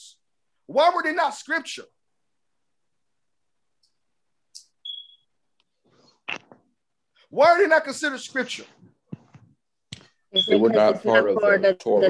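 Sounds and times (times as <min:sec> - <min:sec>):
high-pitched electronic beep: 0:04.8 - 0:05.3, 0:10.4 - 0:11.0.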